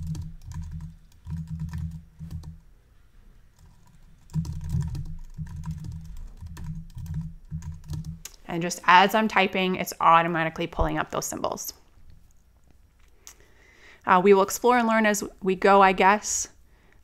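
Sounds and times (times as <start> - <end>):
computer keyboard typing: 0.0 - 2.6, 3.6 - 8.4.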